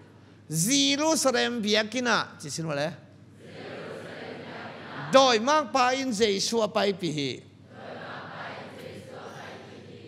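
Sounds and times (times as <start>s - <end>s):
man speaking over microphone: 0.5s - 3.0s, 5.1s - 7.5s.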